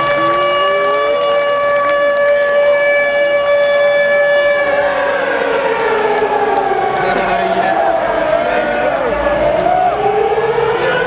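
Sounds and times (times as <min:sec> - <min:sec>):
air-raid siren wailing: 0:00.0 - 0:11.0
crowd shouting and cheering: 0:00.0 - 0:11.0.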